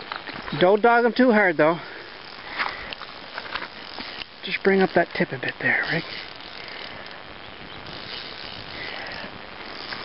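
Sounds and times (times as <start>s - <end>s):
river hiss: 0.9s - 10.0s
faint ticks: 2.2s - 7.2s.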